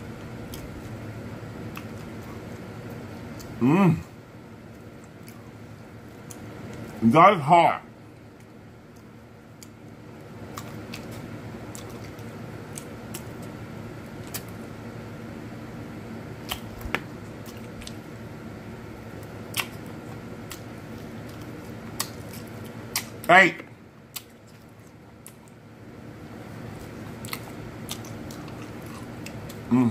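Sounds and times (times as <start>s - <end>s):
low room hum: 0.0s - 29.9s
chewing and smacking: 0.4s - 1.0s, 1.6s - 3.6s, 4.6s - 7.0s, 8.1s - 14.7s, 16.4s - 18.2s, 19.0s - 23.3s, 24.0s - 25.7s, 26.5s - 29.7s.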